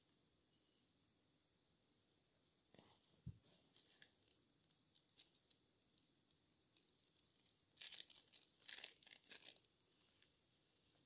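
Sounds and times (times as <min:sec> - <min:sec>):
packet torn and crinkled: 0:06.7 - 0:09.7.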